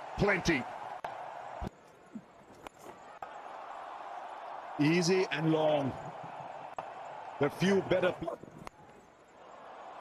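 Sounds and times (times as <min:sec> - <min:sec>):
stadium crowd hubbub: 0:00.0 - 0:10.0.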